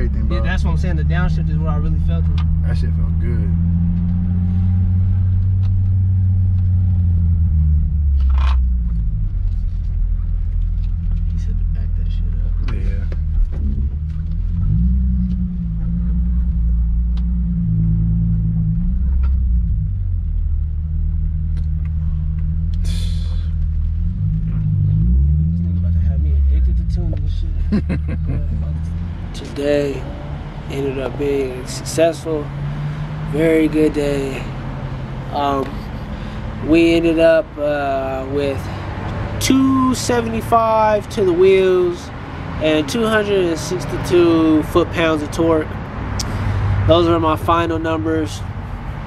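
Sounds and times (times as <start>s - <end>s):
car engine with gear changes: 0.0s - 49.0s.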